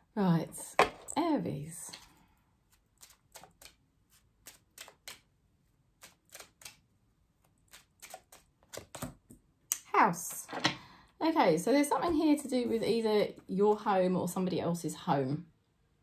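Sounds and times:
cards being shuffled by hand: 7.4 - 9.3.

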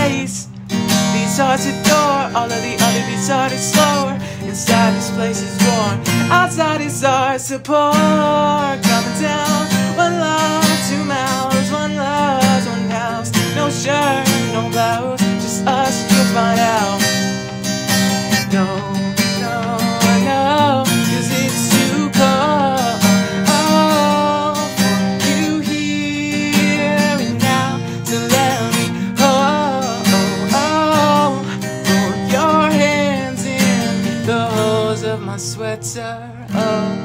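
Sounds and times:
acoustic guitar strumming: 0.0 - 37.0
person singing: 0.0 - 37.0.

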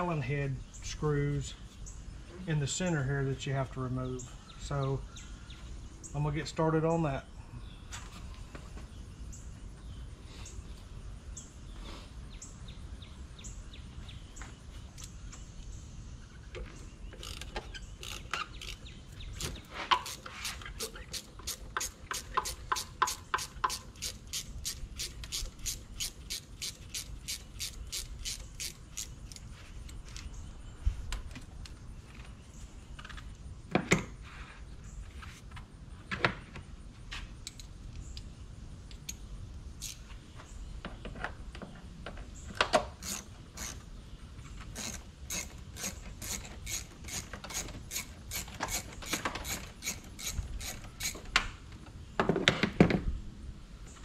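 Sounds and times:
ratchet wrench clicking: 17.2 - 29.4, 39.8 - 40.0, 43.0 - 43.8, 44.8 - 51.4.

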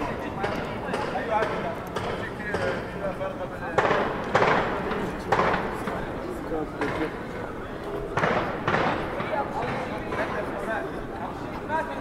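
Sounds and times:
passers-by talking faintly: 0.0 - 12.0.

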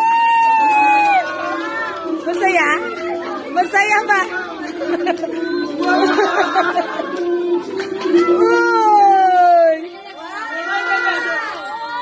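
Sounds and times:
people talking over one another: 0.7 - 12.0.

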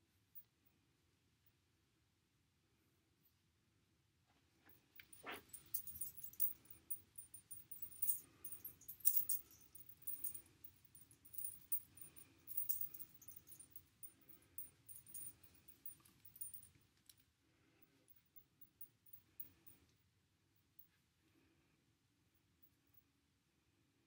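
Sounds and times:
bracelet charms clinking: 5.0 - 16.7.

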